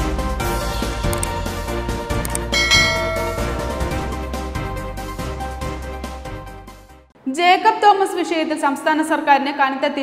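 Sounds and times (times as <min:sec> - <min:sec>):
background music: 0:00.0 - 0:07.1
bright bell-like chime: 0:02.5 - 0:04.3.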